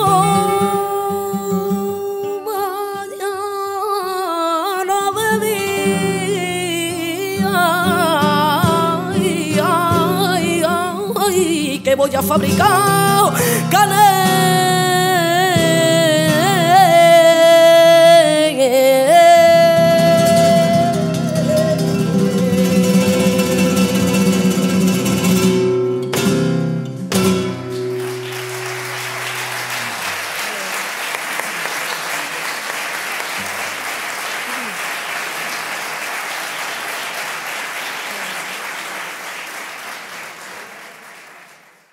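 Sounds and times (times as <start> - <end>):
woman singing: 0.0 - 25.1
flamenco guitar: 0.0 - 30.6
audience applauding: 27.4 - 41.9.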